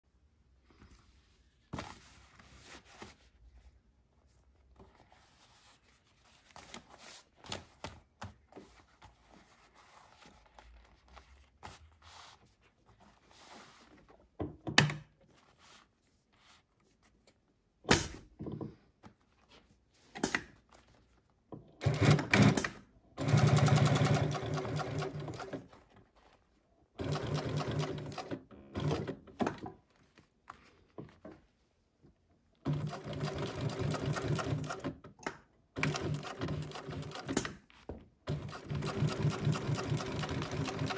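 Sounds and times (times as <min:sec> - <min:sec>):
industrial sewing machine stitching: 0:21.8 - 0:25.6.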